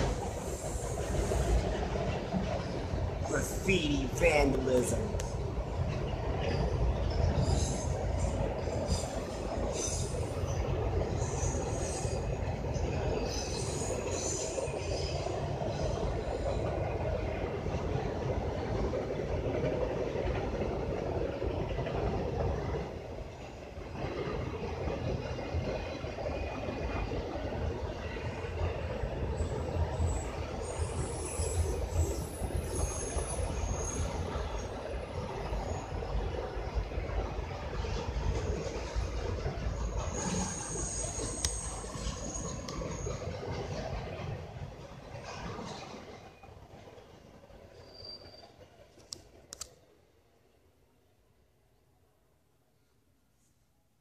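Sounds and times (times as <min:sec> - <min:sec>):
steel wheels rumbling on rail: 0:00.0 - 0:49.6
high-pitched wheel squeals: 0:40.0 - 0:43.3, 0:47.7 - 0:48.6.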